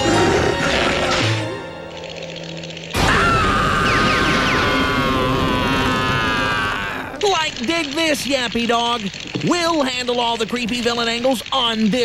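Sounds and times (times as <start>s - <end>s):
cartoon character screaming: 3.0s - 7.2s.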